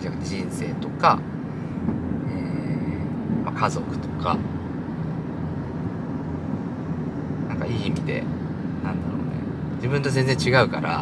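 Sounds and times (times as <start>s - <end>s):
car cabin road noise: 0.0s - 11.0s
faint high whine: 0.0s - 11.0s.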